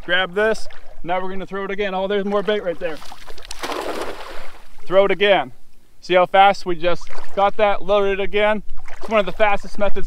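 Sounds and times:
cast net splashing on water: 2.5s - 4.8s, 7.0s - 7.4s.

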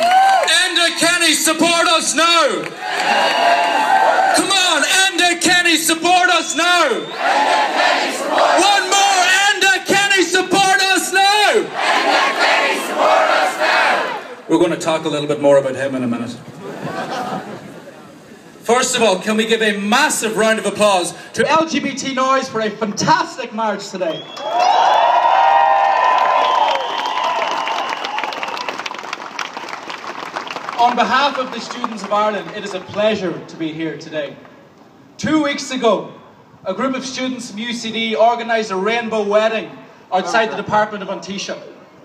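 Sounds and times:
large crowd clapping: 0.0s - 0.6s, 2.6s - 4.5s, 24.2s - 33.2s
crowd cheering: 0.0s - 0.8s, 2.0s - 5.0s, 6.4s - 9.3s, 24.1s - 31.2s
crowd chanting in unison: 7.1s - 8.7s, 11.7s - 14.4s.

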